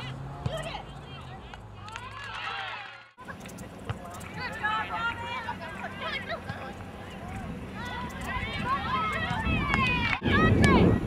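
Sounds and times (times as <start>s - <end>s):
voices shouting and calling: 0.0s - 11.0s.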